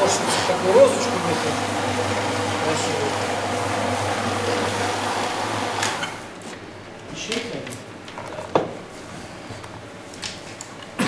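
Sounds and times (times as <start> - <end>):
floor buffing machine humming: 0.0 - 6.6.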